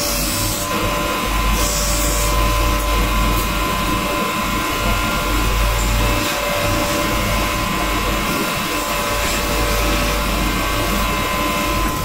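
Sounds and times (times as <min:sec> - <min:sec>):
grinding wheel motor whine: 0:00.0 - 0:12.0.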